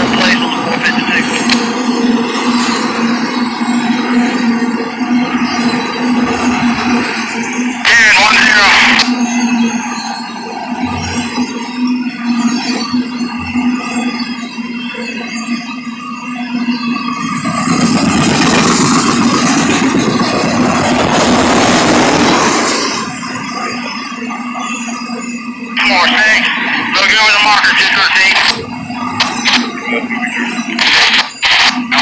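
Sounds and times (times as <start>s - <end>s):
freight train rumbling and rattling: 17.3s - 23.6s.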